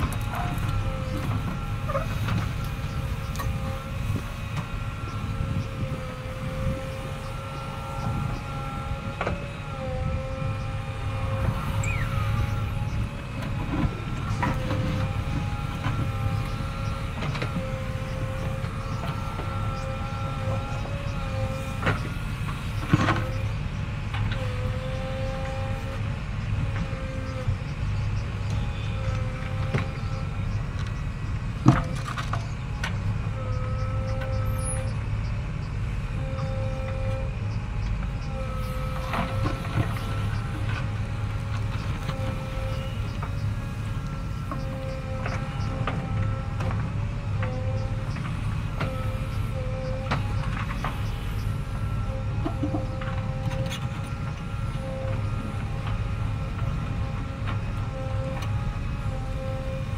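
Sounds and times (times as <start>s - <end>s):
diesel engine under load: 0.0s - 59.9s.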